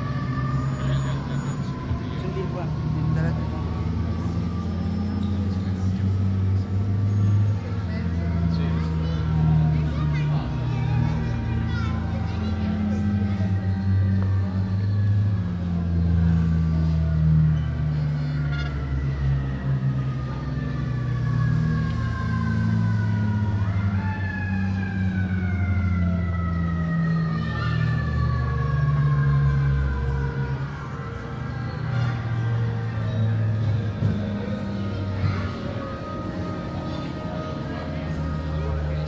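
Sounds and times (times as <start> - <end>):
steady low drone: 28.0 - 39.0.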